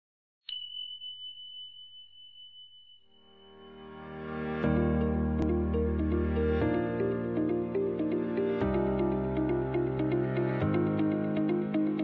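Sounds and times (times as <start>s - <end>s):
high chime ringing: 0.5s - 4.8s.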